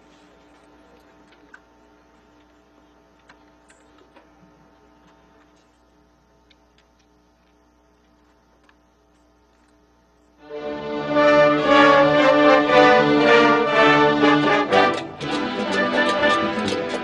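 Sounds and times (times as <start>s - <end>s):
orchestra playing loud chords: 10.4s - 17.0s.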